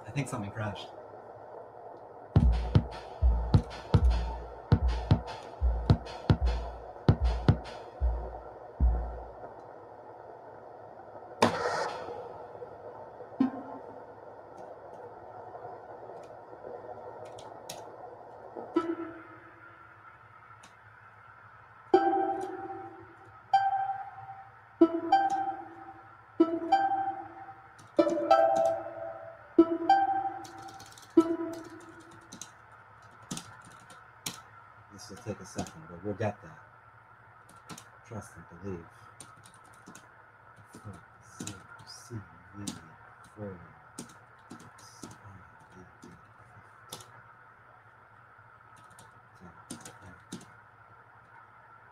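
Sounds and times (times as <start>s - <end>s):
noise burst: 0.0s - 51.9s
kick drum hits: 2.4s - 9.2s
plucked synth notes: 2.4s - 9.4s, 22.0s - 32.0s
synth drone: 2.4s - 9.5s, 21.9s - 32.3s.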